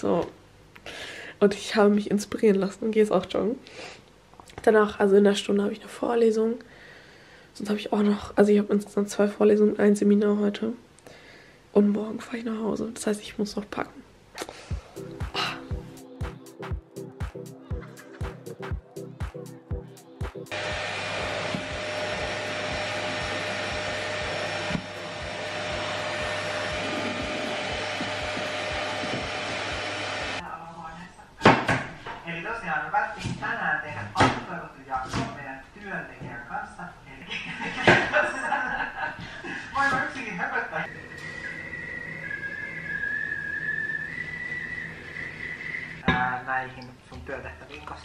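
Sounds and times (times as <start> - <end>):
kettle whistling: 20.5 - 30.4, 40.9 - 46.0
vacuum cleaner running: 20.5 - 30.4, 40.9 - 46.0.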